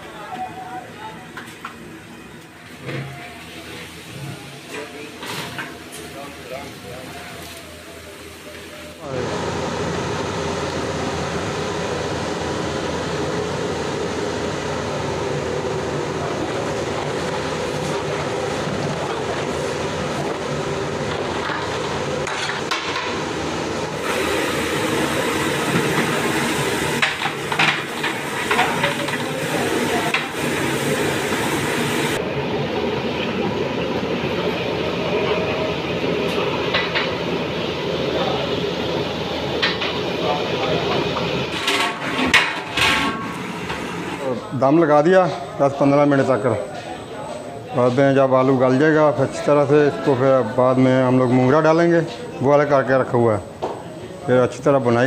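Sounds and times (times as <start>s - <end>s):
pot cooking with loud hiss: 3.4s - 32.2s.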